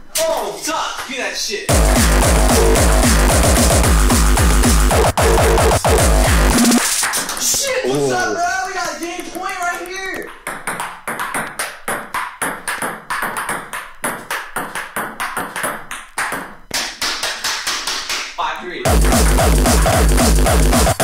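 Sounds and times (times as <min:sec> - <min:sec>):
distorted kick drum beat: 0:01.7 - 0:07.0, 0:18.9 - 0:21.0
hardcore techno track: 0:01.7 - 0:07.0, 0:18.9 - 0:21.0.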